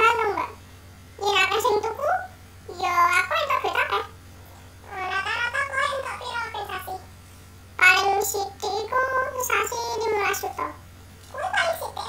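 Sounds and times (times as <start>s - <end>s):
child's high-pitched voice: 0.0s - 0.6s, 1.2s - 4.2s, 4.8s - 7.1s, 7.8s - 12.0s.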